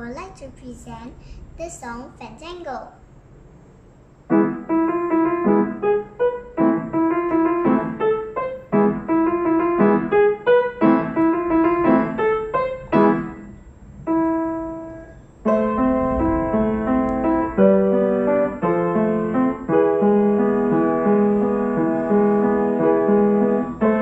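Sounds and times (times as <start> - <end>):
child playing piano: 4.2 - 24.0.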